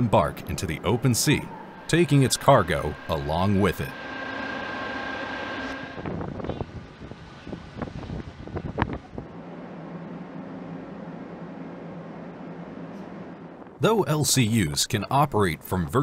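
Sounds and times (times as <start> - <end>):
machinery drone: 0.0 - 6.7
high steady whine: 0.0 - 7.0
low engine drone: 0.0 - 7.0, 9.2 - 13.9
wind noise: 5.8 - 9.5.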